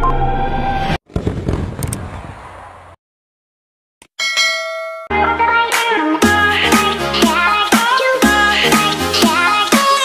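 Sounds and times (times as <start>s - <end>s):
fireworks bangs and crackles: 1.1s - 2.6s.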